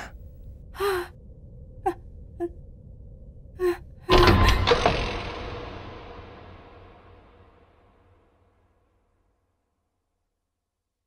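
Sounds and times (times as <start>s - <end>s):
woman gasping: 0.8s - 1.2s.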